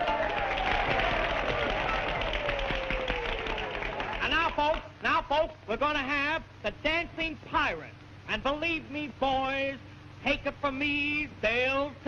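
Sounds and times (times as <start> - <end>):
crowd applauding: 0.0 - 4.9.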